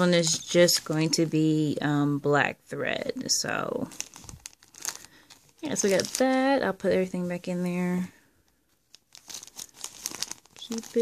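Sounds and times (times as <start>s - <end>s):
plastic bag crinkling: 3.6s - 11.0s.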